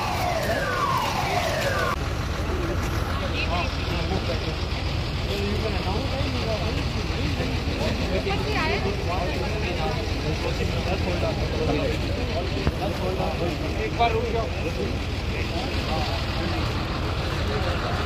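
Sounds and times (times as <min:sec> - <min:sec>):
siren sweeping: 0:00.0 - 0:02.3
crowd talking: 0:00.0 - 0:18.0.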